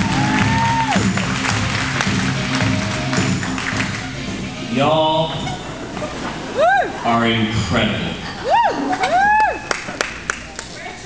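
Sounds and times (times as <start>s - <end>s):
crowd applause: 0.0s - 4.6s, 8.0s - 10.7s
music playing: 0.0s - 9.6s.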